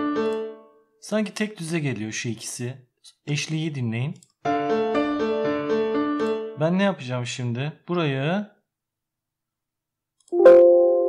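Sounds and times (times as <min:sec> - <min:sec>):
sampled piano note ringing: 0:10.4 - 0:11.0.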